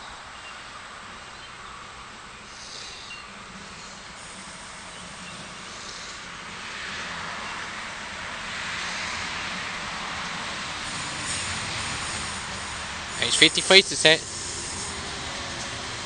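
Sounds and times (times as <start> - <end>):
electric train approaching: 2.4 - 16.0
train wheels on rails: 2.5 - 16.0.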